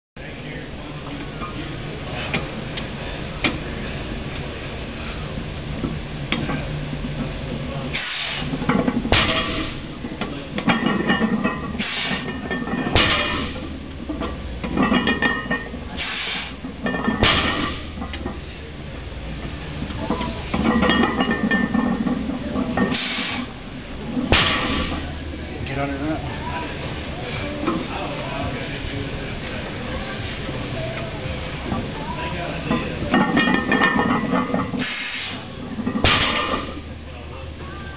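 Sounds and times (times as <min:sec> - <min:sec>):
barbell plates thudding and clanking: 0:07.9 - 0:18.4, 0:20.0 - 0:25.1, 0:32.8 - 0:36.9
barbell plates hitting floor: 0:08.5 - 0:09.8, 0:10.6 - 0:13.7, 0:16.8 - 0:18.0, 0:24.2 - 0:25.1, 0:35.8 - 0:36.8.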